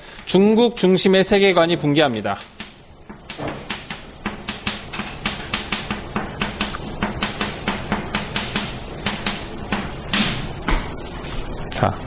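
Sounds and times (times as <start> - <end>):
chalk tapping and scraping on blackboard: 2.4 - 11.0.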